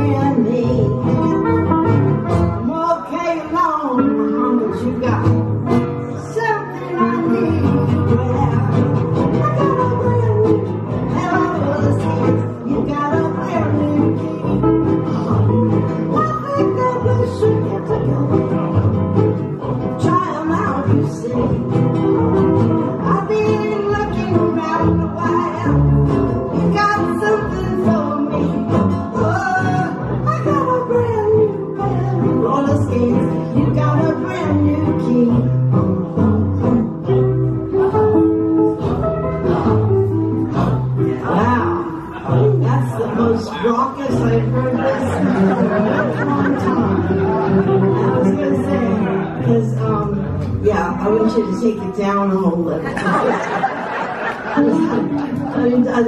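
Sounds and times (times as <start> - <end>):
woman singing: 0.0 - 5.5, 6.1 - 18.8, 19.6 - 21.9, 22.9 - 38.4, 39.0 - 52.9, 54.6 - 56.0
nylon-string acoustic guitars: 0.0 - 56.0.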